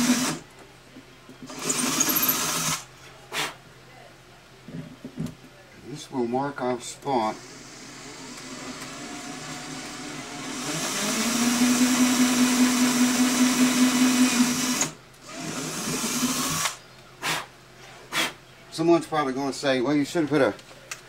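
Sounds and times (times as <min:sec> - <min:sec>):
cordless drill boring wood: 0:00.0 - 0:00.4, 0:01.5 - 0:02.9, 0:07.3 - 0:16.8.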